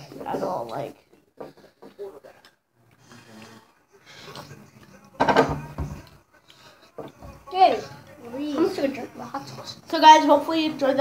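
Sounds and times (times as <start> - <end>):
murmur of boys' voices: 3.2 - 11.0.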